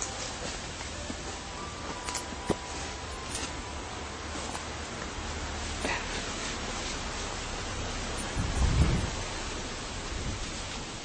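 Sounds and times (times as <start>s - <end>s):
leafy branches rustling: 0.0s - 11.0s
wind hiss on microphone: 4.5s - 11.0s
low rumble: 6.5s - 11.0s.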